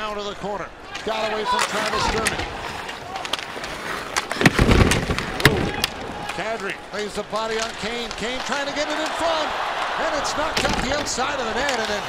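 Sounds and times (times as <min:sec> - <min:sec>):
hockey skates scraping: 0:01.0 - 0:09.4.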